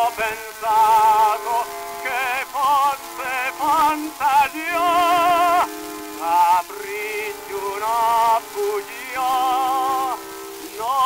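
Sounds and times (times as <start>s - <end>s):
operatic tenor singing: 0.0s - 11.0s
record surface hiss: 0.0s - 11.0s.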